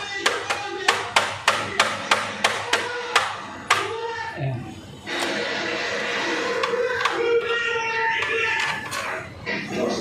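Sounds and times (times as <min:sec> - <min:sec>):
indistinct television voices: 0:00.0 - 0:10.0
television music: 0:00.0 - 0:10.0.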